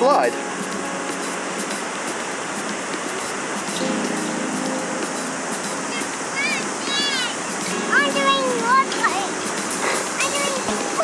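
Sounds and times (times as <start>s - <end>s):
beach noise: 0.0s - 11.0s
child's high gliding vocal sounds: 5.8s - 11.0s.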